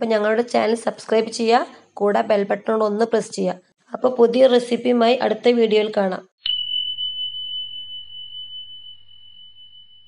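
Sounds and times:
high pure electronic tone: 6.4s - 10.0s.

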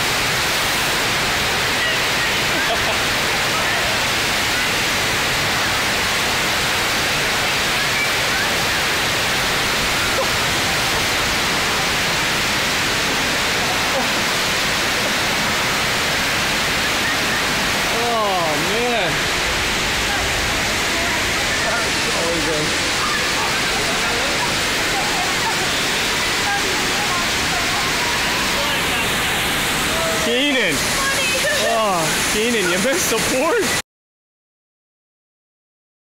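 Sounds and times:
rushing water: 0.0s - 33.8s.

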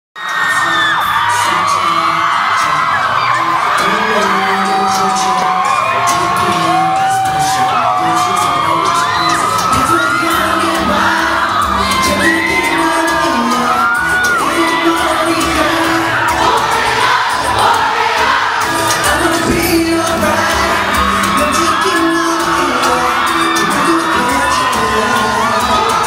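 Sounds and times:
crowd screaming and whooping: 0.2s - 26.0s
live pop song with male vocal: 0.2s - 26.0s.

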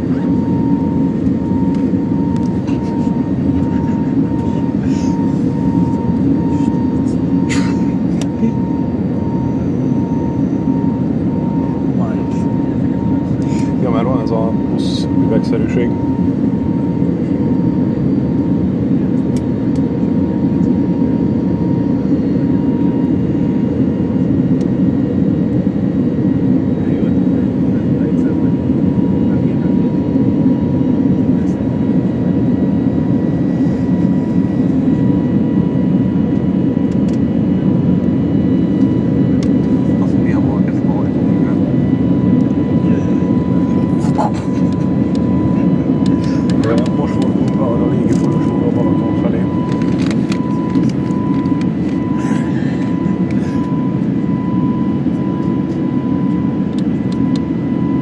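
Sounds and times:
airplane engines in cabin: 0.0s - 58.0s
thin steady whine: 0.0s - 58.0s.

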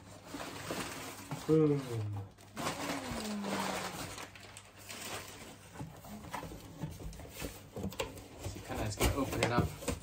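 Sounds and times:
gift bag rustling: 0.0s - 10.0s.

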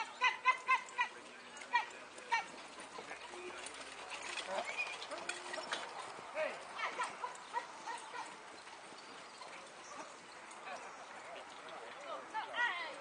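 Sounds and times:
hoofbeats on sand: 0.0s - 13.0s
voices calling: 0.0s - 13.0s
carriage noise: 0.6s - 10.7s.

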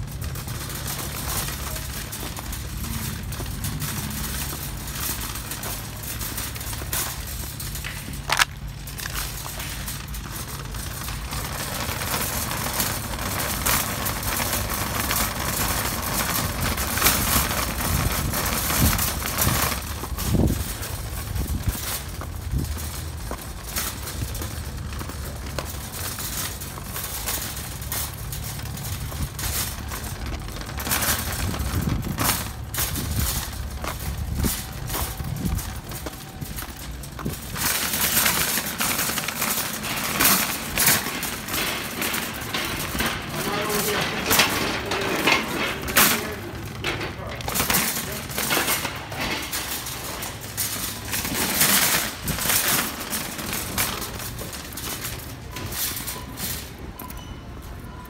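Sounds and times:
footsteps on pavement: 0.1s - 55.6s.

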